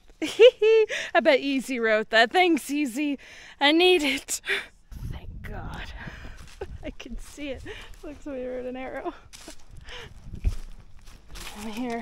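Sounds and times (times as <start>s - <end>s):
footsteps: 5.4s - 12.0s
heavy breathing: 7.6s - 8.0s, 9.7s - 10.3s.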